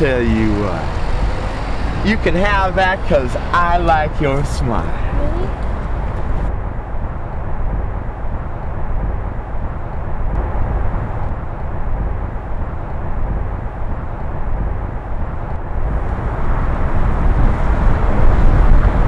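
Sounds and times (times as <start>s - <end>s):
heavy low outdoor rumble: 0.0s - 19.0s.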